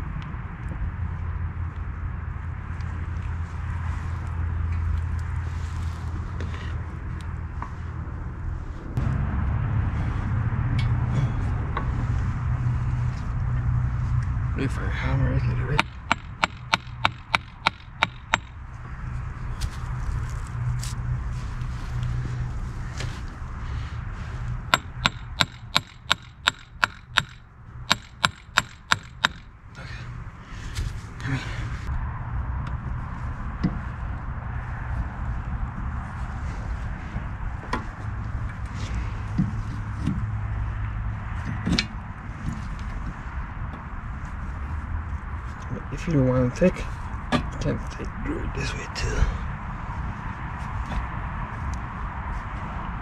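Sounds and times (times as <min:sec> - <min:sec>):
hammer striking metal: 0:15.8 - 0:18.6, 0:24.7 - 0:29.5.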